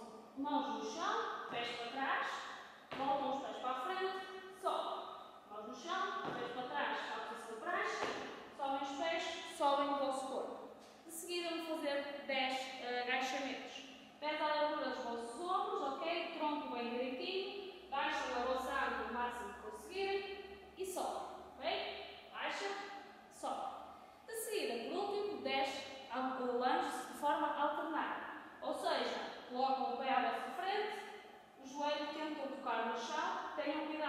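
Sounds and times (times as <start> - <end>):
woman speaking: 0.0 - 20.2, 20.8 - 21.8, 22.4 - 23.7, 24.3 - 31.0, 31.6 - 34.0
woman talking: 0.0 - 20.2, 20.8 - 21.8, 22.4 - 23.7, 24.3 - 31.0, 31.6 - 34.0.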